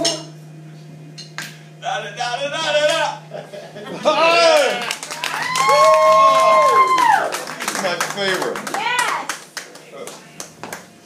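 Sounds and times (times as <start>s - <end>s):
scattered hand clapping: 4.6s - 10.9s.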